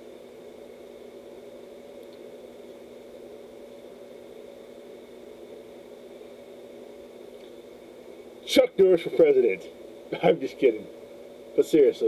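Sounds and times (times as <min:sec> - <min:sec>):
faint steady tones: 0:00.0 - 0:12.0
room tone hum and hiss: 0:00.0 - 0:12.0.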